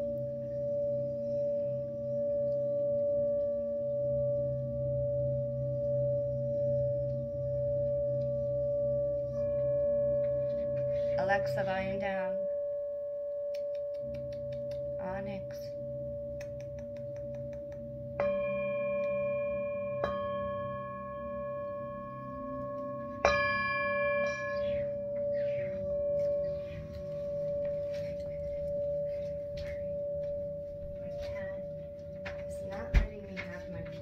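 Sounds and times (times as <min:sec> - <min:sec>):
singing bowl ringing hum: 0:00.0 - 0:34.0
mallet striking singing bowl: 0:18.2 - 0:21.5.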